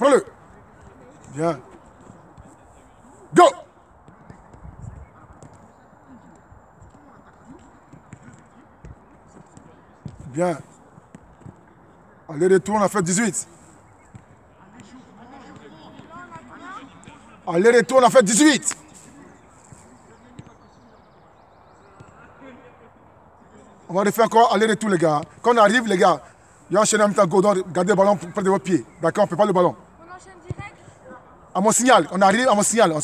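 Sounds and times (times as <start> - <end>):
faint distant voices: 0.0 - 33.0
footballs tapping on turf: 4.0 - 12.0, 14.0 - 20.8.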